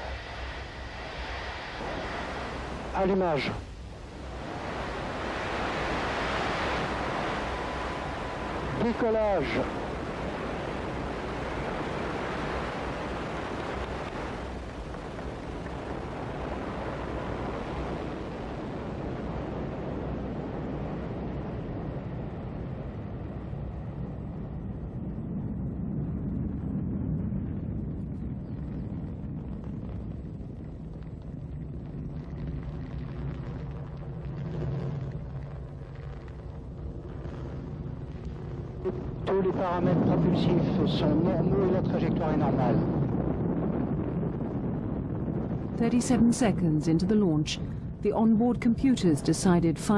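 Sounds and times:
low rumble: 0:00.0 - 0:49.9
rocket engines roaring: 0:00.0 - 0:49.9.

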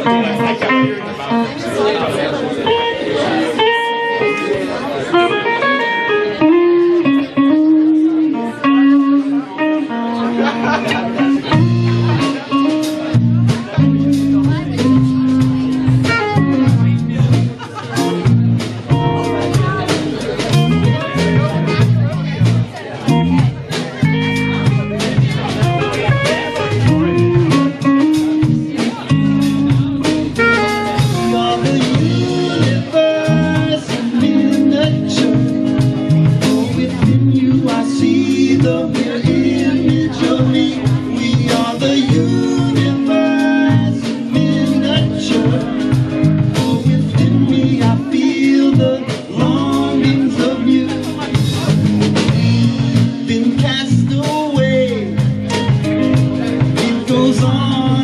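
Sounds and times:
electric guitar: 0:00.0 - 0:58.0
live band playing instrumental: 0:00.0 - 0:58.0
drum kit: 0:05.2 - 0:58.0.

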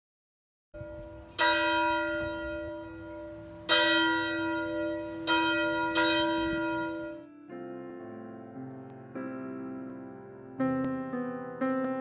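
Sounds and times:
church bell tolling: 0:00.8 - 0:08.4.

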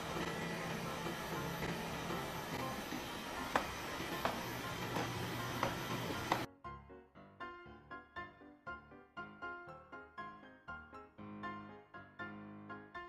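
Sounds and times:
robot vacuum whirring: 0:00.0 - 0:06.5.

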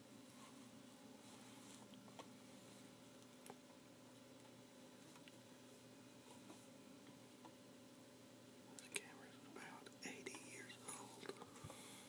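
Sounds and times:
soft whispering: 0:08.7 - 0:12.0.

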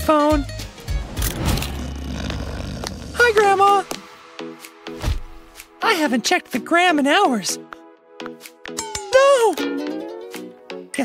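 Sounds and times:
low rushing whoosh: 0:00.7 - 0:04.6.

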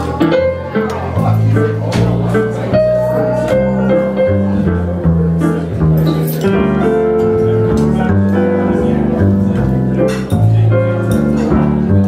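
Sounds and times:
piano chords: 0:00.0 - 0:12.0
plucked bass: 0:00.0 - 0:12.0.

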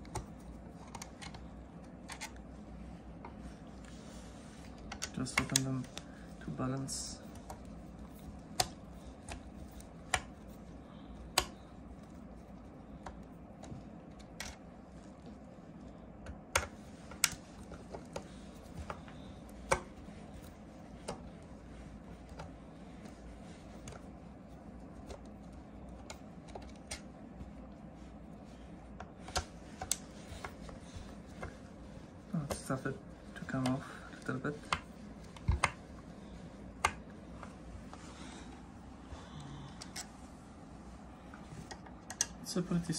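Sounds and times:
low steady hum: 0:00.0 - 0:42.9.

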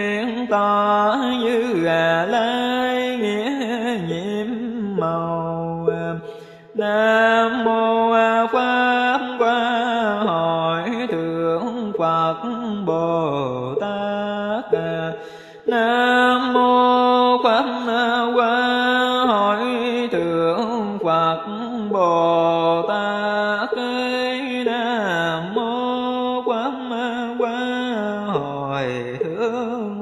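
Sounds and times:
person chanting melodically: 0:00.0 - 0:30.0.

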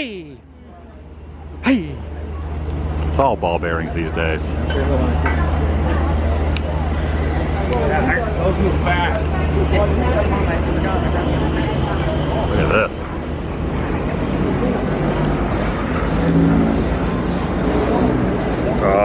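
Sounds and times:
voices: 0:00.0 - 0:15.6
person laughing: 0:01.6 - 0:02.0.

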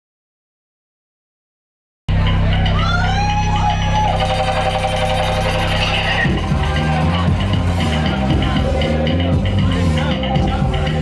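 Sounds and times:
buzzing synthesizer bass drone: 0:02.1 - 0:11.0
high tone sliding in pitch: 0:02.2 - 0:11.0.

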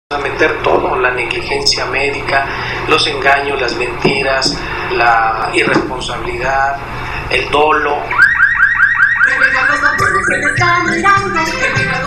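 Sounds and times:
voice: 0:00.1 - 0:08.2, 0:09.3 - 0:12.0
electronic yelp siren: 0:08.0 - 0:12.0.

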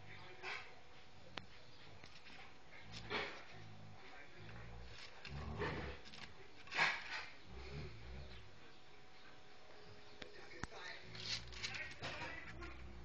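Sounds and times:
dogs growling: 0:00.0 - 0:08.8, 0:10.9 - 0:13.0.

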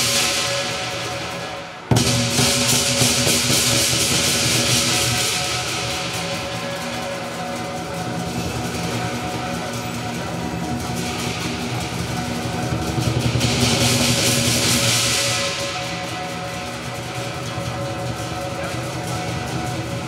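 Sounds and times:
crash cymbals: 0:00.0 - 0:20.0
large drum: 0:00.0 - 0:20.0.

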